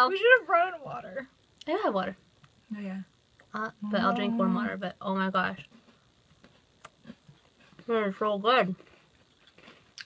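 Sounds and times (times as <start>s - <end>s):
woman speaking: 0.0s - 5.7s, 7.8s - 8.8s
quiet chewing of cookies: 5.6s - 8.1s, 8.7s - 10.0s.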